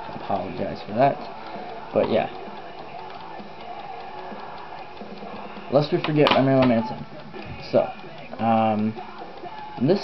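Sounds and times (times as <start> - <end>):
timer ticking: 0.0 - 10.0.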